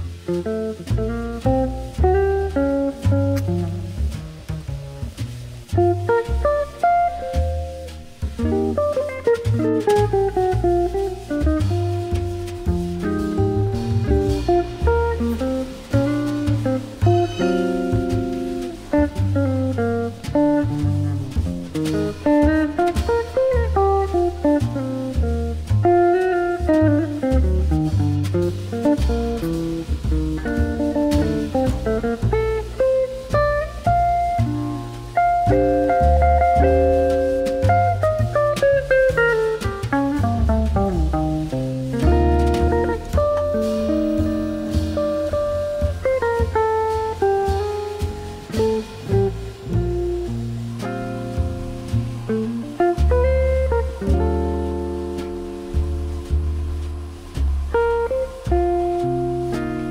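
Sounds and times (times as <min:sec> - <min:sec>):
jazzy guitar and bass music: 0:00.0 - 0:59.9.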